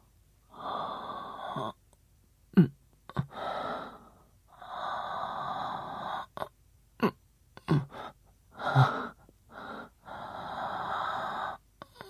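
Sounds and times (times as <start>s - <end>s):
man breathing in sleep: 0.5s - 1.8s, 3.2s - 6.4s, 7.8s - 12.0s.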